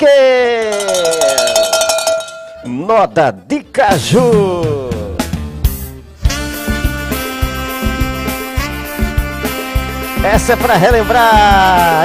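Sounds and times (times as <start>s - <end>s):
ringing tone with fast rattle: 0.6s - 2.7s.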